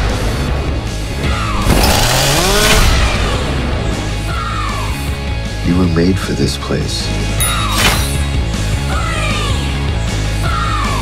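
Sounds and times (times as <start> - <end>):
dark trailer score: 0.0 - 11.0.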